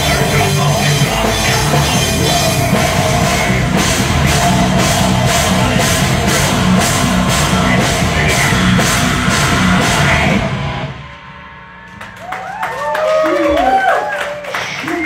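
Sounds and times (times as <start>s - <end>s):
live rock band playing: 0.0s - 13.8s
audience cheering and whooping: 12.0s - 15.0s.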